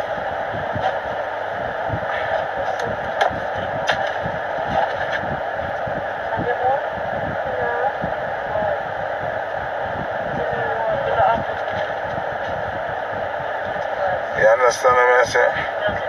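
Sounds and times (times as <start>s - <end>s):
rushing noise in car cabin: 0.0s - 16.0s.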